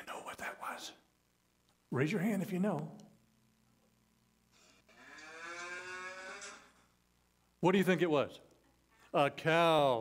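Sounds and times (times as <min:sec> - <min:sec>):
cow mooing through phone speaker: 0:05.0 - 0:06.7.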